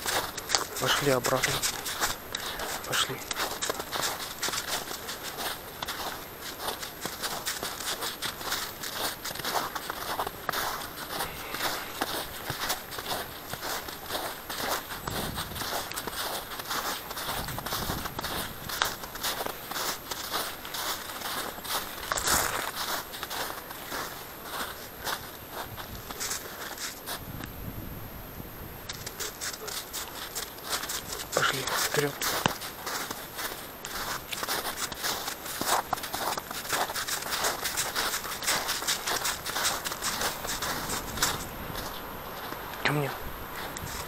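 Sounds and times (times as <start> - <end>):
footsteps on snow: 0.0 - 27.4, 28.8 - 44.0.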